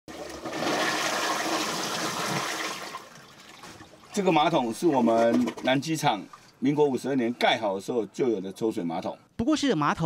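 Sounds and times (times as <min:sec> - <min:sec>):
toilet flushing: 0:00.1 - 0:06.3.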